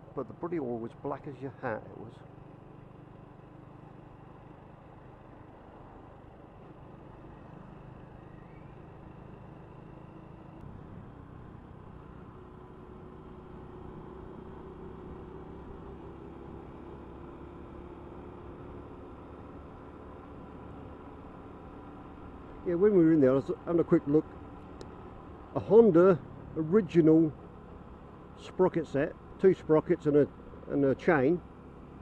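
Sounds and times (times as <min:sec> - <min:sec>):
motorcycle engine drone: 0:00.0 - 0:32.0
wind and road noise: 0:00.0 - 0:32.0.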